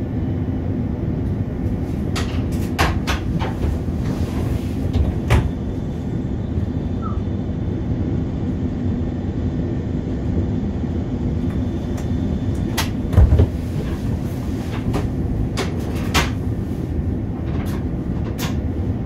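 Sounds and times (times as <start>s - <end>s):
electric train cab hum: 0.0s - 19.0s.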